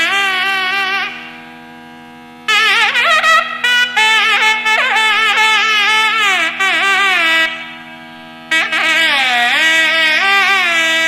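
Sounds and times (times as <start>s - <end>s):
double-reed wind instrument melody: 0.0s - 11.0s
steady drone: 0.0s - 11.0s.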